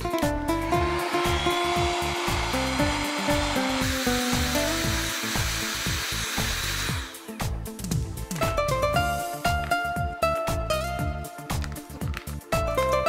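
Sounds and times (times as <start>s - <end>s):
background music: 0.0s - 13.0s
heat gun blowing hot air: 0.6s - 7.5s.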